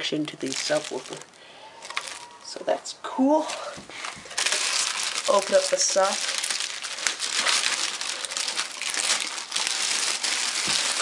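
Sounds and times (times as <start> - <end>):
plastic bag crinkling: 0.0 - 2.6, 3.4 - 11.0.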